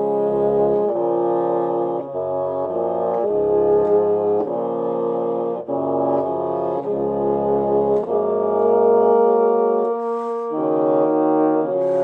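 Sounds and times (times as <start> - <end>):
bassoon quartet playing chords: 0.0 - 12.0.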